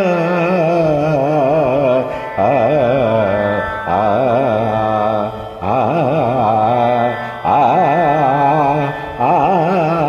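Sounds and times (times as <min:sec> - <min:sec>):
man singing: 0:00.0 - 0:10.0
faint steady drone: 0:00.1 - 0:10.0.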